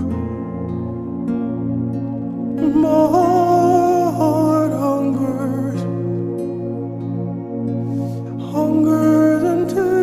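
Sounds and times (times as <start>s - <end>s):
person singing worship song: 0.0s - 1.2s, 2.6s - 6.6s, 8.0s - 10.0s
soft ambient backing music: 0.0s - 10.0s.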